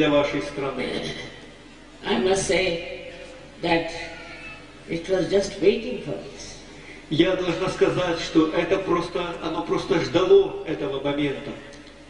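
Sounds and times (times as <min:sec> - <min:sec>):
woman talking: 0:02.0 - 0:03.0, 0:03.6 - 0:04.3, 0:04.9 - 0:06.7.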